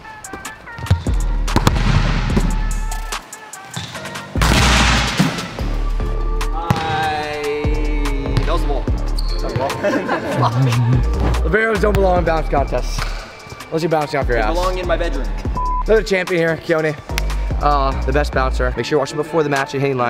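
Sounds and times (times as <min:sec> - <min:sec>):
volleyball smacking gym floor: 0:00.8 - 0:02.6, 0:03.8 - 0:05.6
music with heavy bass beat: 0:00.9 - 0:03.3, 0:10.3 - 0:12.4.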